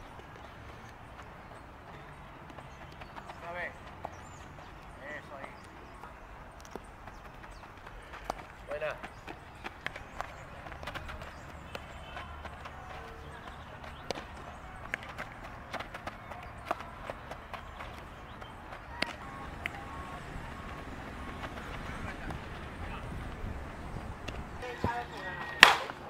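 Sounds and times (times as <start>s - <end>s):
balls snapping into gloves: 6.6s - 6.9s, 9.6s - 19.8s, 25.4s - 26.0s
bat hitting ground balls: 25.4s - 26.0s.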